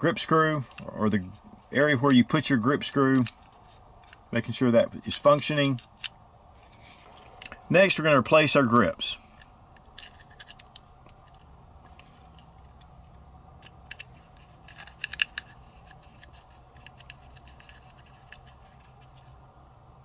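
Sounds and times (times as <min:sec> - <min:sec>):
hex key turning screws: 0:09.8 - 0:12.9, 0:13.6 - 0:19.2.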